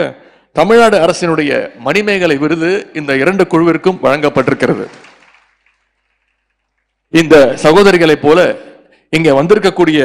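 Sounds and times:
man speaking into microphone: 0.0s - 5.0s, 7.1s - 10.0s.

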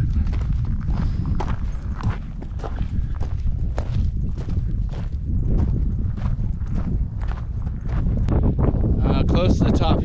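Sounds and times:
footsteps crunching on scree: 0.0s - 8.4s
wind rumbling on microphone: 0.0s - 10.0s.

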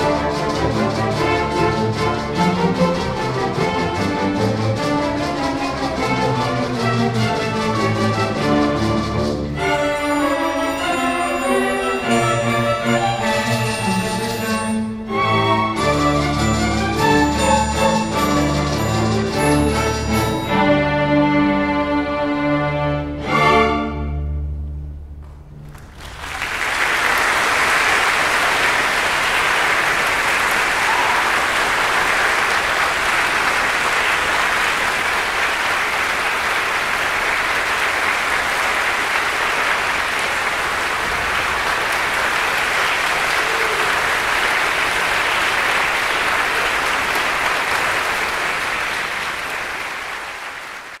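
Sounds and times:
low string orchestra notes: 0.0s - 51.0s
audience applause: 25.6s - 51.0s.

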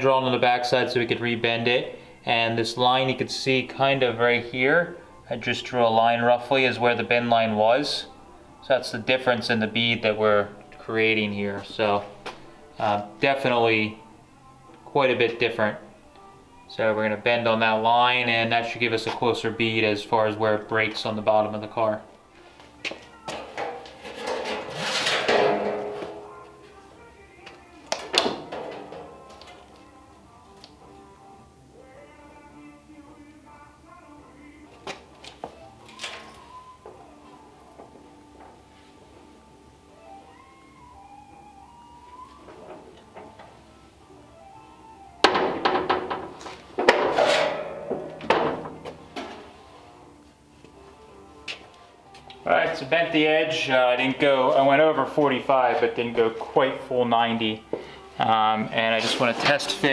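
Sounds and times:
background music: 0.0s - 59.9s
sheet metal clanking and rattling: 23.4s - 26.3s, 28.1s - 29.2s, 45.3s - 49.4s.

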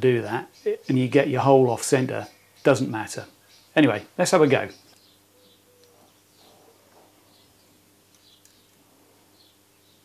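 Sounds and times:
faint low hum: 0.0s - 10.0s
small bird chirping faintly: 0.0s - 10.0s.

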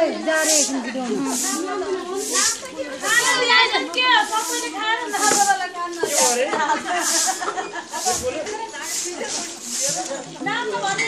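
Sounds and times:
voices singing folk song: 0.0s - 10.5s
short hissing beat: 0.4s - 3.4s, 4.2s - 6.4s, 7.0s - 7.4s.

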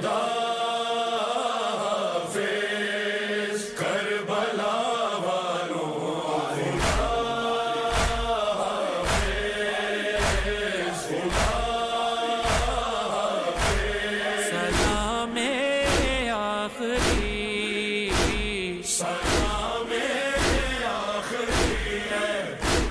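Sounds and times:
person chanting a lament: 0.0s - 22.9s
heavy rhythmic thumps: 6.8s - 22.9s.

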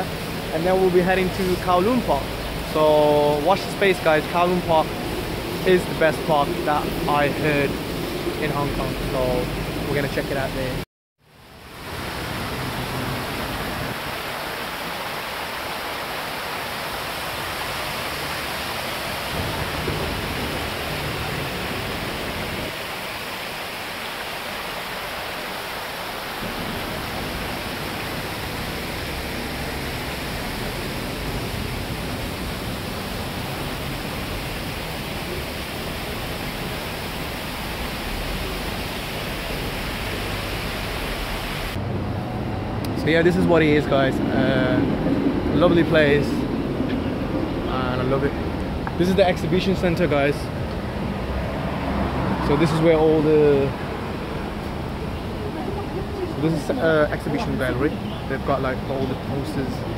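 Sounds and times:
waterfall splashing into pool: 0.0s - 10.8s, 11.6s - 41.8s, 48.0s - 59.9s.

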